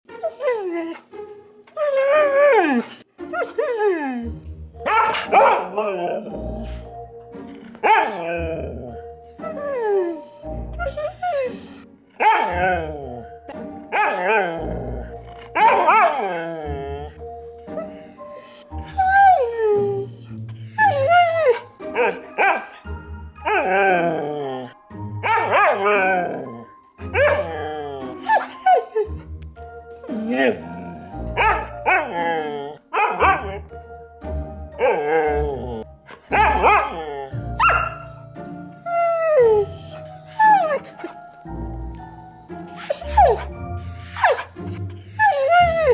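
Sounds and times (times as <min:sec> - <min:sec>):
dogs howling and yowling: 0:00.2 - 0:01.1, 0:01.7 - 0:06.9, 0:07.5 - 0:41.8, 0:42.6 - 0:45.9
background music with bass: 0:29.1 - 0:45.9.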